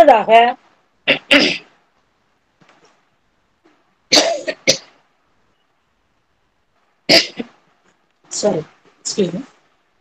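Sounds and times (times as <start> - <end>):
woman coughing: 4.1 - 4.9, 7.1 - 7.5.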